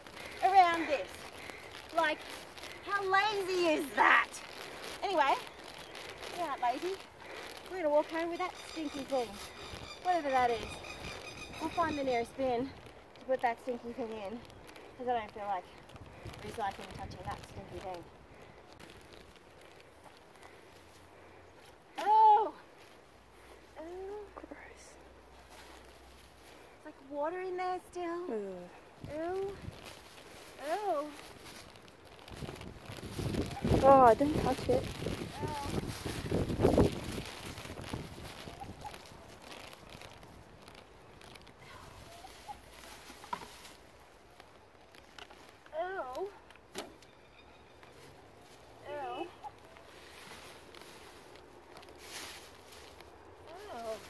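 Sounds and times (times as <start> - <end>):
faint bird calls: 8.4 - 12.2.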